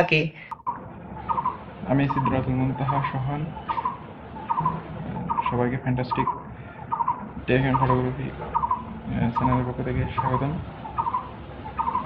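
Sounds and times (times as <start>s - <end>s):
bird chirping: 0.4s - 12.0s.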